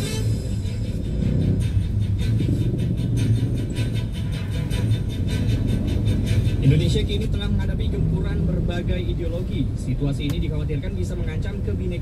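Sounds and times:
car rumble in traffic: 0.0s - 12.0s
radio background music: 4.4s - 12.0s.

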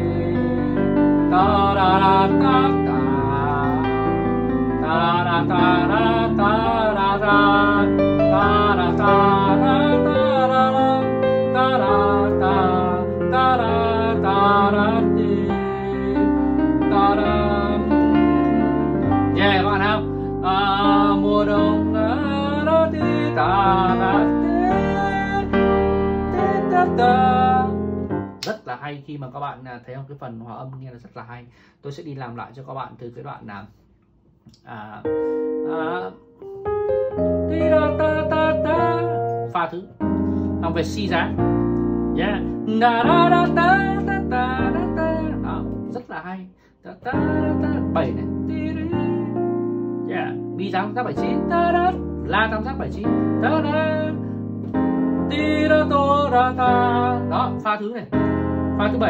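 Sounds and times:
person singing with vibrato: 0.0s - 27.8s, 34.7s - 41.2s, 42.2s - 45.7s, 46.9s - 49.5s, 55.3s - 57.6s
piano ballad accompaniment: 0.0s - 28.5s, 35.0s - 46.1s, 47.0s - 59.0s
man singing syllables: 4.8s - 18.2s, 19.3s - 25.6s.

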